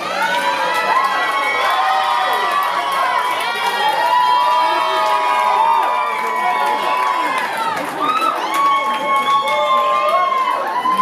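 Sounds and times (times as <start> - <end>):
audience cheering: 0.0 - 11.0
high-pitched whoops and screams: 0.0 - 11.0.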